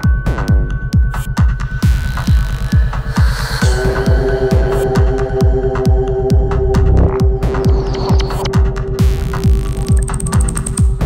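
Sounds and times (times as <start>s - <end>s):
kick drum and bassline: 0.0s - 11.0s
held synth tone: 2.9s - 10.8s
ticking hi-hats: 6.8s - 11.0s.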